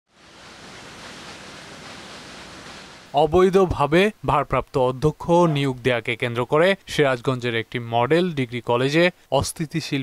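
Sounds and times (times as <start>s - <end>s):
outdoor background hiss: 0.1s - 10.0s.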